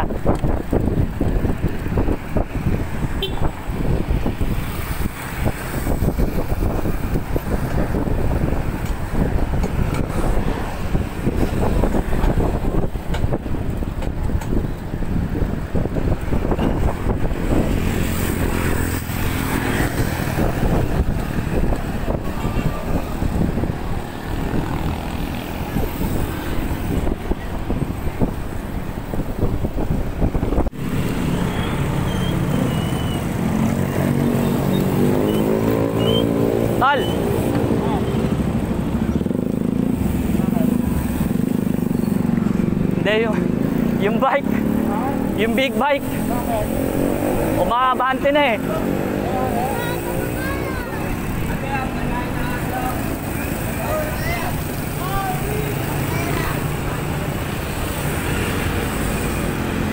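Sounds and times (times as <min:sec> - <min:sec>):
wind on microphone: 0:00.0 - 0:47.7
passing traffic rumble: 0:00.0 - 0:59.9.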